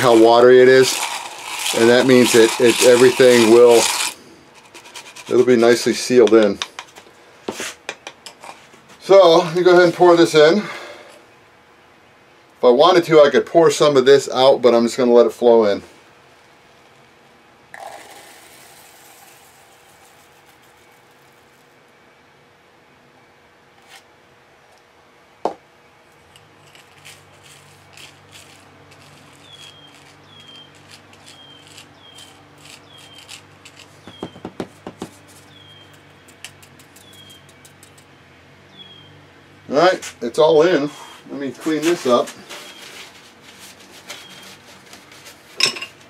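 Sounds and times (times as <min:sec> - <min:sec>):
stick clicking among lead pellets: 0:00.0 - 0:05.4, 0:26.3 - 0:34.4, 0:35.9 - 0:38.0
epoxy pouring: 0:00.0 - 0:05.9, 0:17.7 - 0:21.7, 0:26.2 - 0:35.6
high falling chirp: 0:29.3 - 0:34.5, 0:35.4 - 0:37.8.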